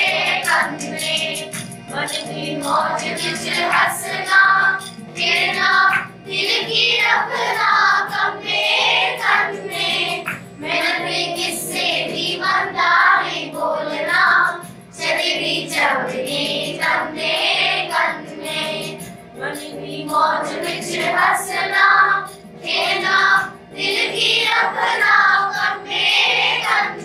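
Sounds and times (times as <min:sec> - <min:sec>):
children singing a folk song: 0:00.0 - 0:27.0.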